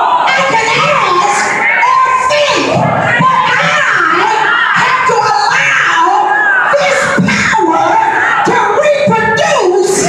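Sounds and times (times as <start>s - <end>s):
congregation shouting along: 0.0s - 10.0s
woman shouting into microphone: 0.0s - 10.0s.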